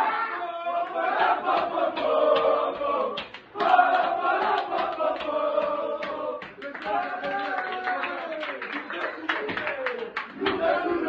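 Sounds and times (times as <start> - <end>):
boys chanting and singing: 0.0 - 7.7, 9.5 - 11.0
hand claps: 0.8 - 10.9.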